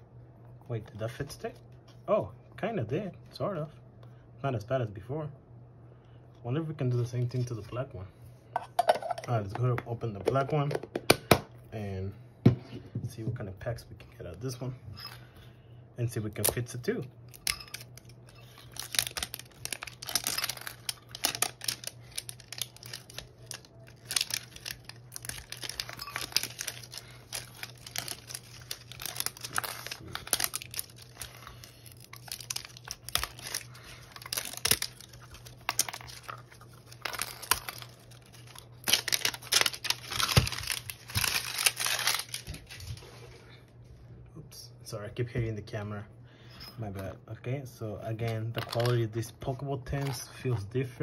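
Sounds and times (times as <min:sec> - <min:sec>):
plastic shrink wrap crinkling: 0:17.3 - 0:43.4.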